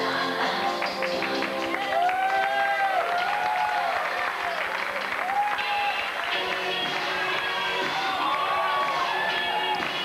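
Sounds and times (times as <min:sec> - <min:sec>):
stage music: 0:00.0 - 0:10.0
audience applauding: 0:00.7 - 0:10.0.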